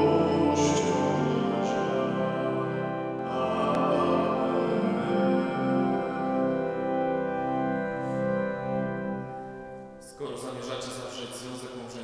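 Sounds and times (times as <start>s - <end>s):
church organ chords: 0.0s - 12.0s
hymn singing: 0.0s - 12.0s.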